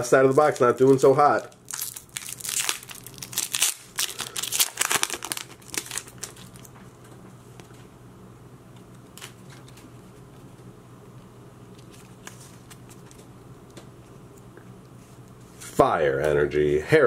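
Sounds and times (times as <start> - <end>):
foil wrapper crinkling and tearing: 0.0 - 6.7
cards being handled: 8.8 - 10.6, 11.8 - 15.8.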